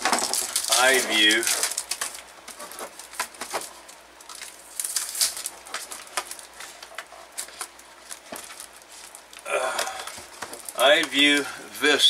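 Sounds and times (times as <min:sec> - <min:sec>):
plastic wrap crinkling: 0:00.0 - 0:11.5.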